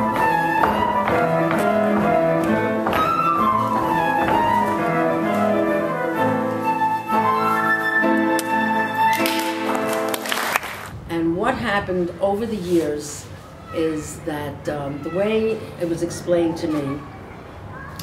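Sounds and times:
flute and strings dance tune: 0.0s - 9.8s.

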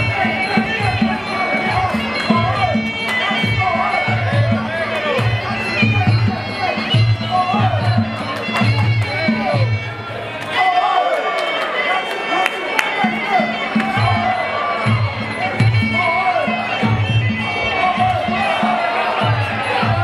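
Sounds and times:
crowd voices: 0.0s - 20.0s
reedy oboe-like melody: 13.0s - 20.0s
drum beat: 16.9s - 20.0s.

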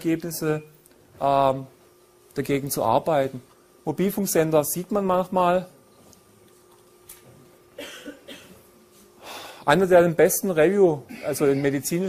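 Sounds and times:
faint steady hum: 0.0s - 12.0s
person coughing quietly: 7.8s - 8.7s, 11.1s - 11.7s.

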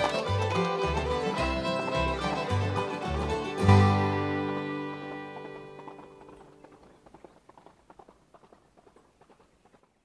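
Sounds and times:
fiddle chord ringing: 0.0s - 6.7s
horse hooves clip-clopping: 0.0s - 10.0s.

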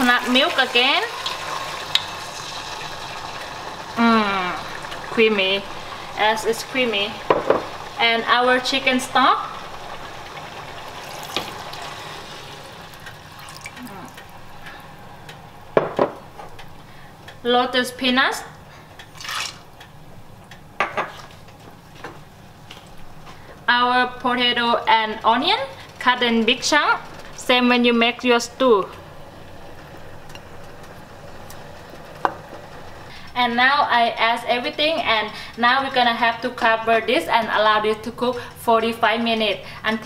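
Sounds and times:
liquid pouring into a pot: 0.0s - 4.0s, 8.7s - 14.4s, 19.0s - 19.8s
vegetables tapping into pot: 7.2s - 7.8s, 15.7s - 16.7s.

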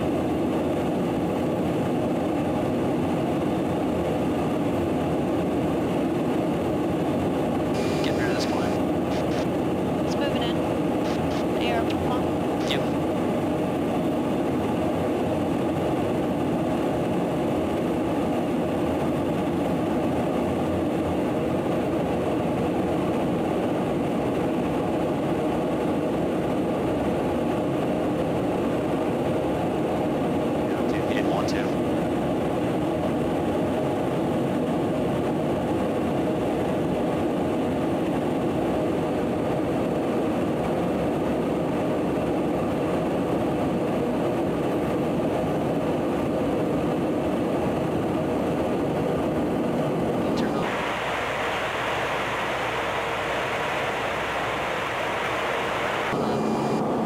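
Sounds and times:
aircraft engine and airflow drone: 0.0s - 57.0s.

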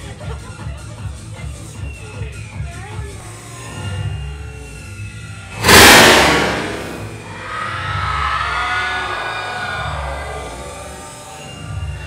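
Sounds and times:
confetti cannon hiss: 5.6s - 7.2s.

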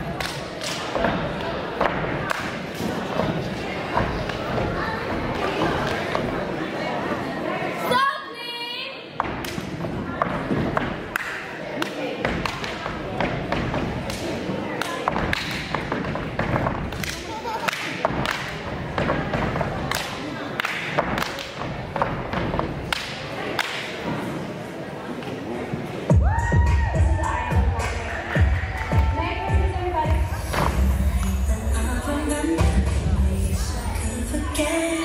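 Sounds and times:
hands clapping: 0.1s - 1.1s, 11.1s - 12.9s, 14.0s - 15.8s, 16.8s - 18.6s, 19.9s - 22.1s, 22.8s - 23.9s.

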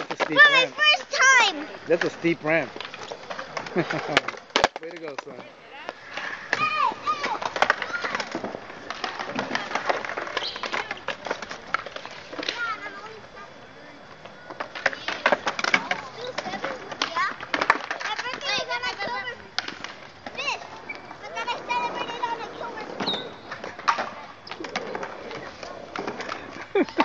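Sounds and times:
children chattering and calling out: 0.0s - 4.4s, 5.3s - 27.0s
skateboard wheels rolling on concrete: 0.0s - 27.0s
skateboards clacking on concrete: 0.0s - 27.0s.

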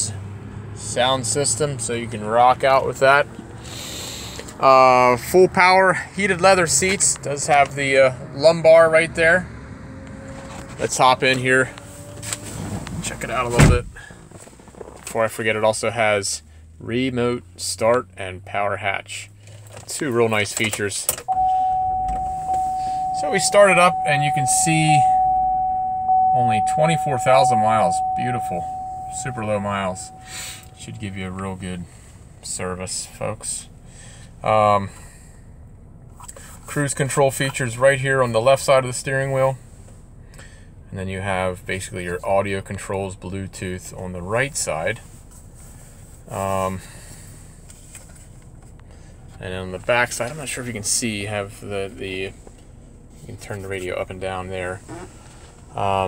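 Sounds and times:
car engine cranking and rumbling: 0.0s - 56.0s
ignition key click: 20.7s - 30.8s
high electronic chime tone: 21.3s - 31.1s.

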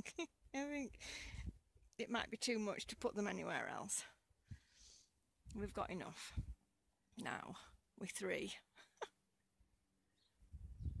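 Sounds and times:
distant bird chirps: 10.0s - 11.0s
low rumble on microphone: 10.5s - 11.0s.

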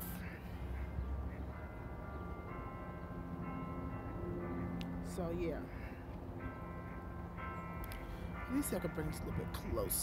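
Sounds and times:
low city hum: 0.0s - 10.0s
sustained ringing tones: 0.0s - 10.0s.

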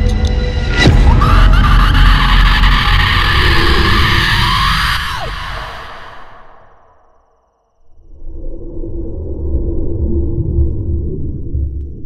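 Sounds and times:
dramatic film score: 0.0s - 12.0s.

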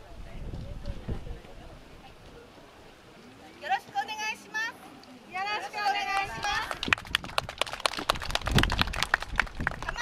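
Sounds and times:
people clapping: 6.0s - 10.0s.

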